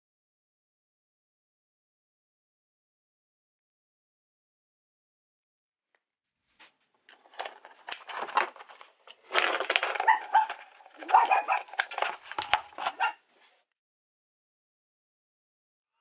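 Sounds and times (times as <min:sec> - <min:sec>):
plastic scraping and creaking: 0:07.0 - 0:13.3.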